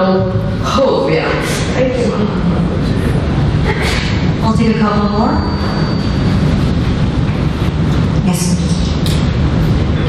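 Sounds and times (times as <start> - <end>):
loud low rumble: 0.0 - 10.0.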